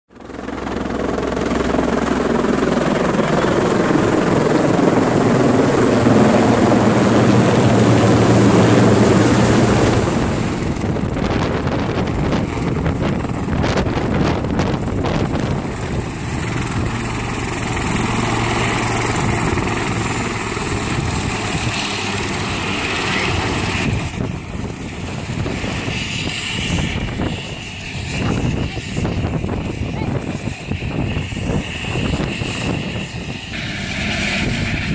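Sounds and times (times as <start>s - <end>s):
helicopter rotors and engines: 0.1s - 34.9s
high steady whine: 30.9s - 34.9s.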